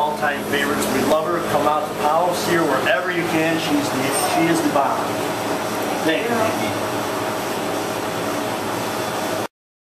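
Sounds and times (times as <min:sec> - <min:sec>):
background hum and hiss: 0:00.0 - 0:09.5.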